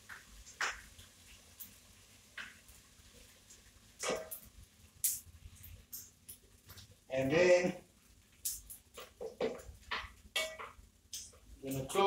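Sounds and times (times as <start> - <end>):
pot and utensils clinking: 4.0 - 4.4, 9.0 - 10.8.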